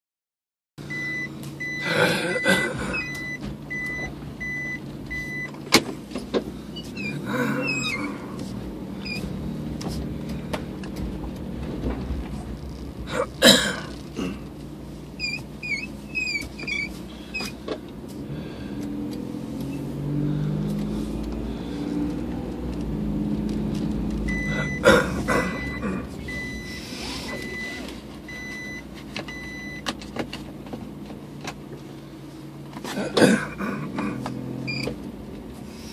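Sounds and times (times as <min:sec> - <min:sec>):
car engine and road hum: 0:00.8 - 0:35.9
reverse warning beeper: 0:00.9 - 0:05.6, 0:24.2 - 0:29.9.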